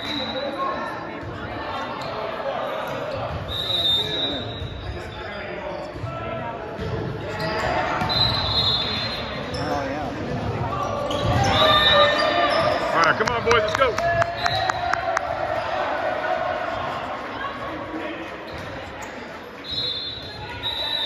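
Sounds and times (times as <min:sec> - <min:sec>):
sneakers squeaking on hardwood: 0:07.3 - 0:13.0.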